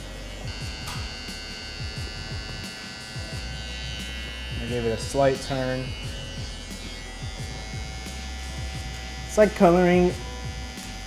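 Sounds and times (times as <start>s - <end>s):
electric hair trimmer humming: 0.0s - 11.0s.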